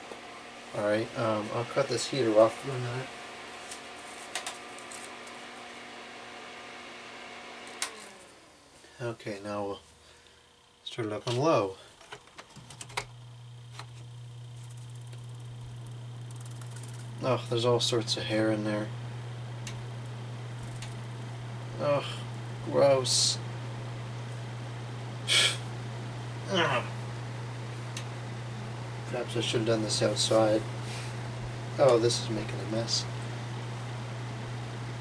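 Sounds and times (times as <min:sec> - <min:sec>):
heater humming: 0:00.0 - 0:35.0
heater switch click: 0:07.7 - 0:08.0, 0:19.6 - 0:19.9, 0:27.9 - 0:28.2.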